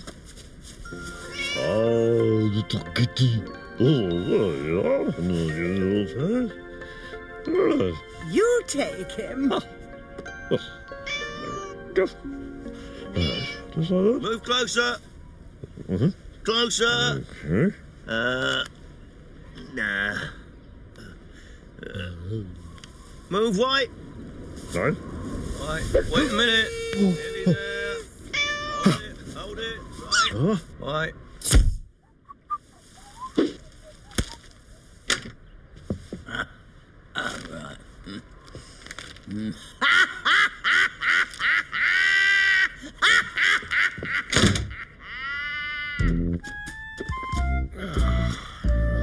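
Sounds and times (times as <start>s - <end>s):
background music: 0.9s - 14.8s, 46.2s - 49.0s
cartoon kitten mewing: 13.2s - 13.6s.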